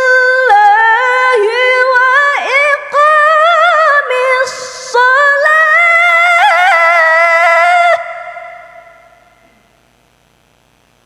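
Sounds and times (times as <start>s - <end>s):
person reciting melodically: 0.0s - 9.4s
faint low hum: 0.0s - 11.0s.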